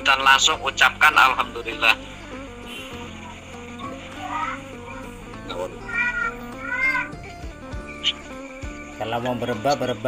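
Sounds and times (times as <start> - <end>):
background music sustained tones: 0.0 - 10.0
high-pitched arching calls: 1.8 - 9.1.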